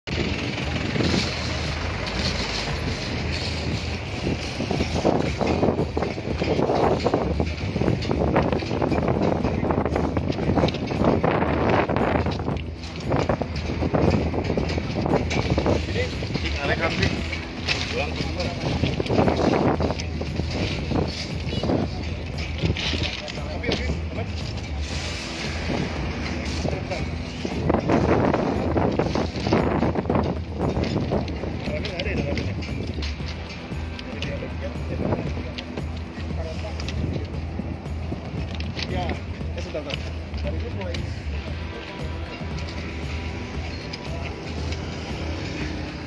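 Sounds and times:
steady low rumble: 0:00.1 - 0:46.0
people talking: 0:15.6 - 0:25.1, 0:25.7 - 0:29.7, 0:30.7 - 0:37.5, 0:38.8 - 0:45.5.

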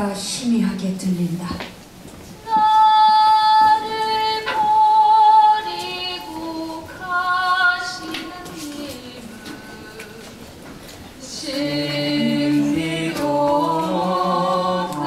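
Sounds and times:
woman singing: 0:02.4 - 0:10.5, 0:11.2 - 0:15.0.

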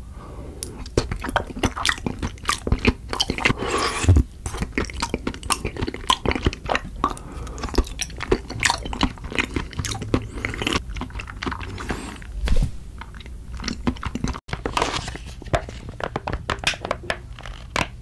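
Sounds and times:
crunchy chewing: 0:00.7 - 0:12.4, 0:13.0 - 0:14.4.

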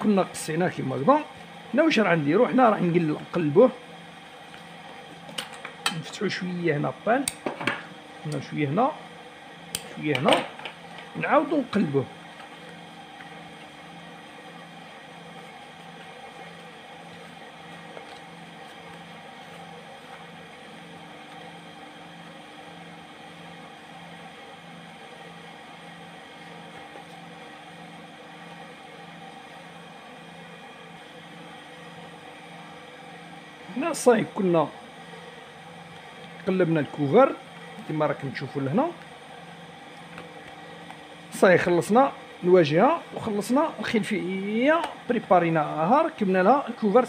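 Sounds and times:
voice: 0:00.0 - 0:03.8, 0:05.9 - 0:07.3, 0:08.2 - 0:09.0, 0:10.0 - 0:10.5, 0:11.2 - 0:12.1, 0:33.7 - 0:34.8, 0:36.4 - 0:39.0, 0:41.4 - 0:47.0
pulsing low mechanical hum: 0:00.0 - 0:47.0.

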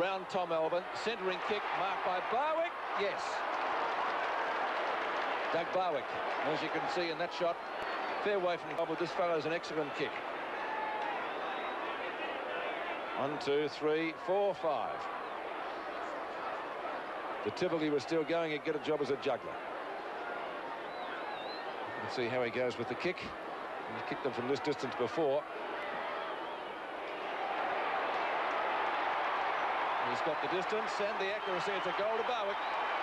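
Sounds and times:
stadium crowd voices: 0:00.0 - 0:33.0.

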